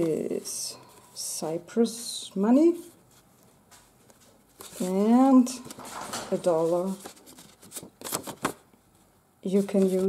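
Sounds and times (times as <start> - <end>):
paper bill rustling: 3.3 - 8.6, 9.5 - 10.0.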